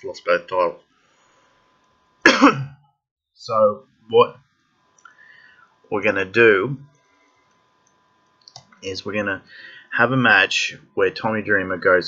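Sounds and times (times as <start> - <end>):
man coughing: 2.3 - 2.8.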